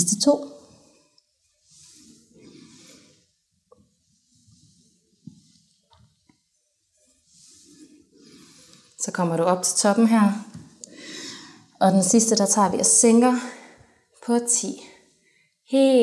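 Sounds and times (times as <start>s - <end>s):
woman breathing softly: 10.8s - 11.7s.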